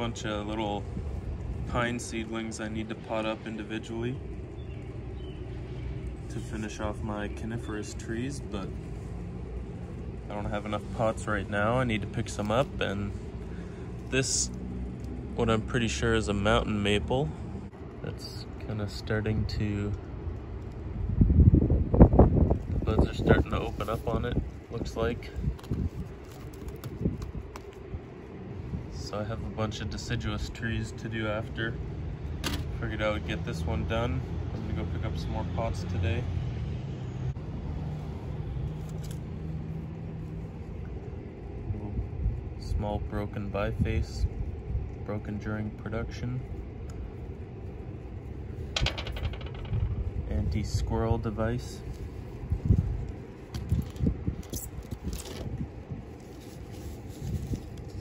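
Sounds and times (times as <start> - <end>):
wind buffeting microphone: 0.0 - 3.4, 19.3 - 31.0, 40.9 - 45.1, 46.6 - 58.0
low outdoor rumble: 0.0 - 58.0
small hard object clattering: 48.6 - 50.2.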